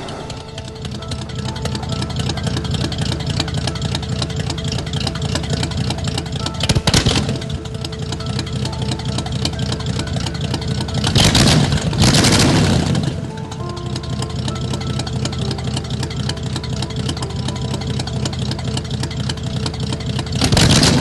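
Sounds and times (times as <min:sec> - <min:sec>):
car engine running: 0:00.0 - 0:21.0.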